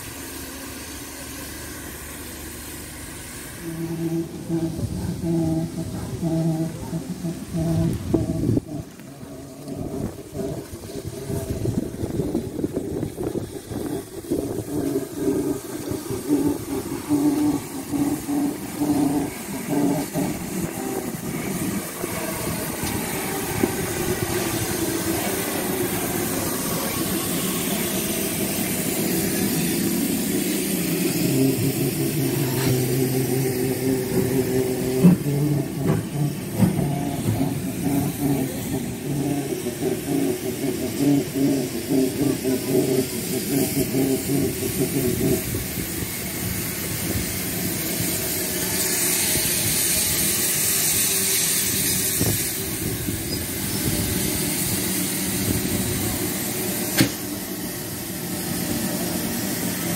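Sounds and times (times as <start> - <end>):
low engine drone: 0.0 - 59.9
steam locomotive chuffing: 0.0 - 59.9.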